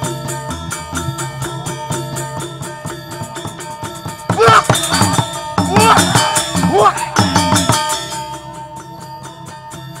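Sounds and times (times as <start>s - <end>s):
gamelan playing: 0.0s - 10.0s
voices calling out: 4.1s - 8.2s.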